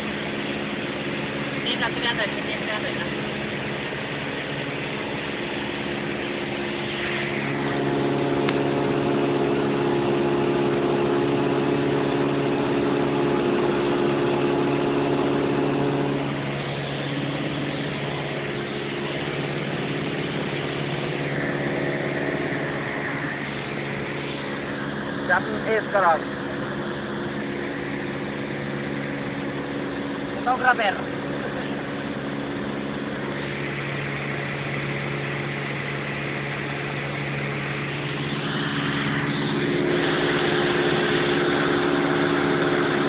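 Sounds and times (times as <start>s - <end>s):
plane engine and propeller droning: 0.0s - 43.0s.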